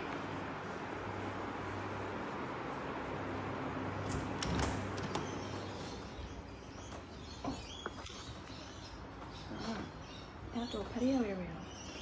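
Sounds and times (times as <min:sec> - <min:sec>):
door latch clicks: 0:04.1 - 0:05.4.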